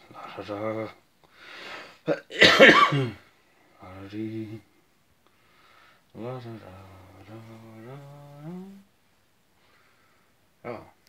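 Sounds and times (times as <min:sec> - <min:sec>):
faint breath: 0:01.3 - 0:02.0, 0:05.3 - 0:06.1, 0:09.5 - 0:10.5
person coughing: 0:02.1 - 0:03.2.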